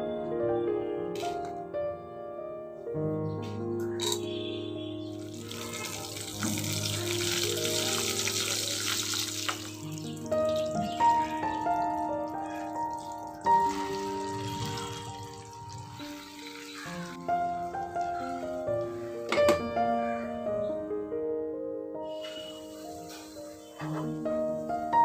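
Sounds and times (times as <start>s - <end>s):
background music: 0.0s - 25.0s
spices sizzling in hot oil: 5.1s - 12.5s, 13.2s - 18.7s, 22.1s - 23.9s.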